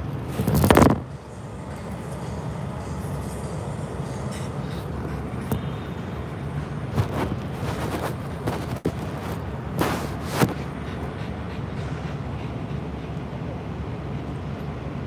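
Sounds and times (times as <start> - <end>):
steady low rumble: 0.0 - 15.0
phone handling scrapes: 7.0 - 10.7.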